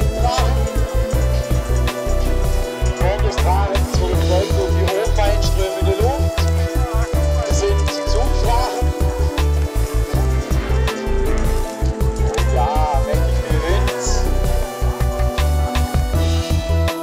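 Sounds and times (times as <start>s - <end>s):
music with heavy choppy bass beat: 0.0s - 17.0s.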